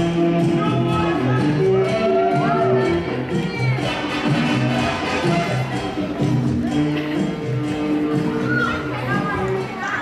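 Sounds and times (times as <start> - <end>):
cha-cha dance music: 0.0 - 10.0
spectators shouting and cheering: 0.5 - 7.2, 7.9 - 10.0.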